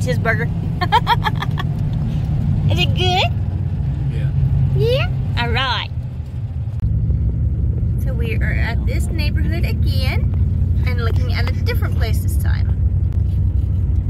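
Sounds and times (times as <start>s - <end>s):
car tyres and engine rumble: 0.0s - 14.0s.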